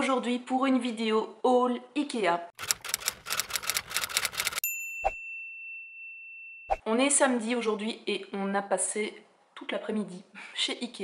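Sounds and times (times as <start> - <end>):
typewriter key clacks: 2.6 - 4.6
typewriter carriage bell: 2.6 - 4.7.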